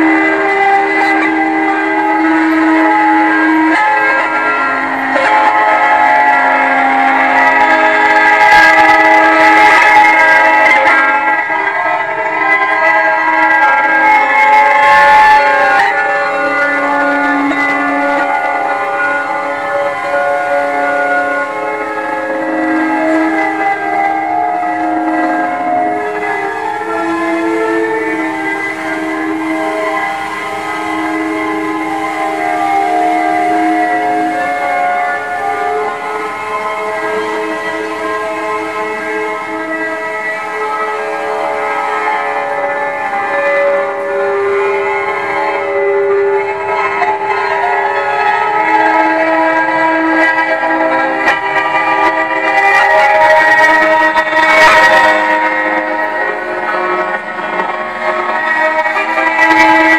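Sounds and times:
sustained piano string drone: 0:00.0 - 0:59.9.

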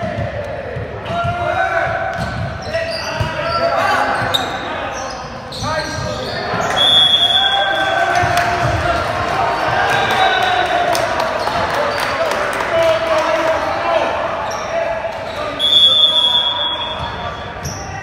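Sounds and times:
people shouting and cheering: 0:00.0 - 0:02.2, 0:06.4 - 0:18.0
referee's whistle: 0:02.6 - 0:08.1, 0:15.3 - 0:18.0.

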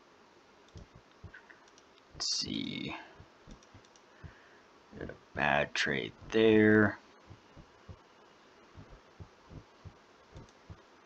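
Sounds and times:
faint computer mouse clicks: 0:00.7 - 0:02.1, 0:03.5 - 0:04.1, 0:10.3 - 0:10.8.

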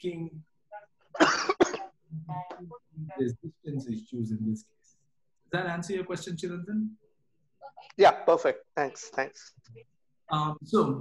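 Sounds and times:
man coughing: 0:01.2 - 0:01.9.

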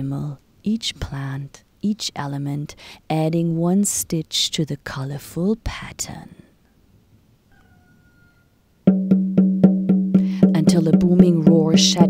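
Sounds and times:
low-pitched percussion notes: 0:08.9 - 0:12.0.

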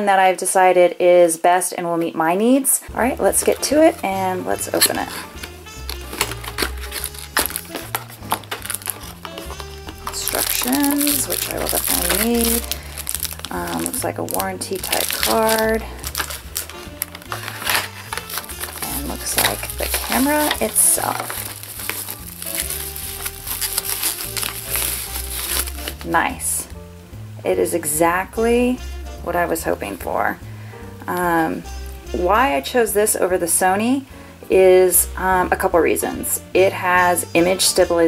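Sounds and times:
background music with bass line: 0:02.9 - 0:34.0
paper wrapping crinkling: 0:03.4 - 0:26.5
cardboard box clicks and rustles: 0:05.9 - 0:13.2, 0:14.8 - 0:26.0.

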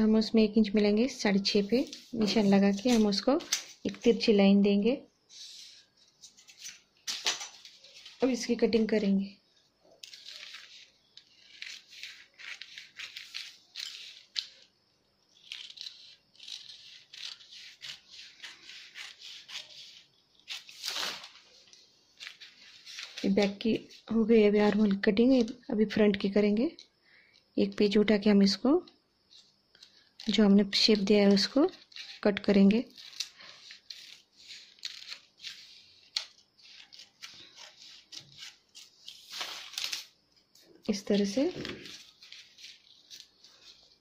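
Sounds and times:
paper rustling: 0:01.5 - 0:04.1, 0:05.3 - 0:08.6, 0:09.8 - 0:14.7, 0:15.3 - 0:25.0, 0:29.3 - 0:44.0
scissors snipping newspaper: 0:10.0 - 0:14.6, 0:15.3 - 0:21.4, 0:41.0 - 0:44.0
scissors snipping paper: 0:10.0 - 0:14.6, 0:15.3 - 0:21.4, 0:31.8 - 0:40.1.

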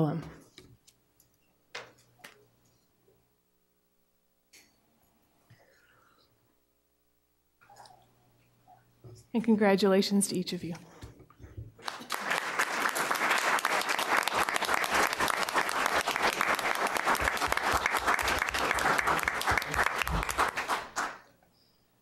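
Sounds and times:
crowd applauding: 0:11.8 - 0:21.3.

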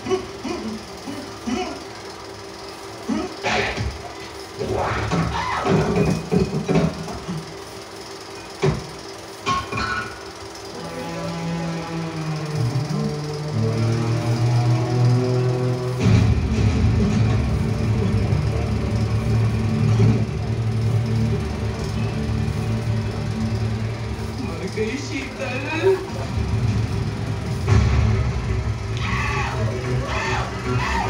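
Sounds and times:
film soundtrack music over loudspeakers: 0:10.7 - 0:31.0.

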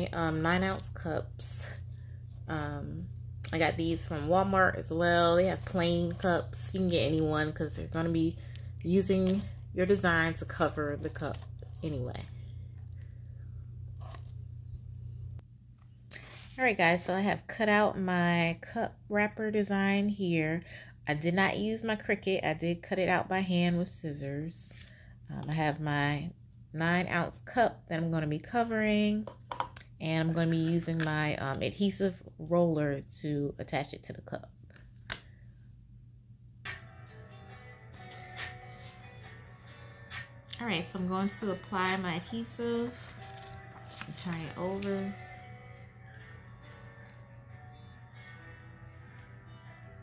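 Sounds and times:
steady low hum: 0:00.0 - 0:19.2
plastic sleeve rustling: 0:08.3 - 0:12.1, 0:42.9 - 0:45.3
quiet plucked guitar music: 0:36.7 - 0:50.0.

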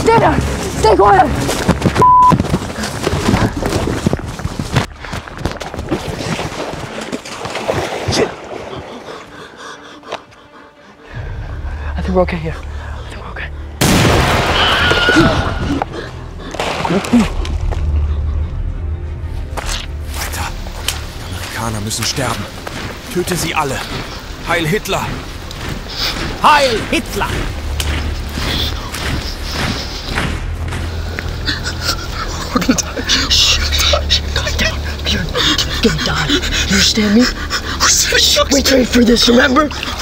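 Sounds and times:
panicked breathing: 0:08.5 - 0:12.0, 0:25.1 - 0:38.0.

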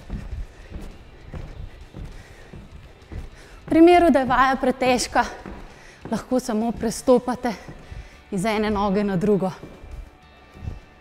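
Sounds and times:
shoes thudding on wooden floor: 0:00.0 - 0:11.0.

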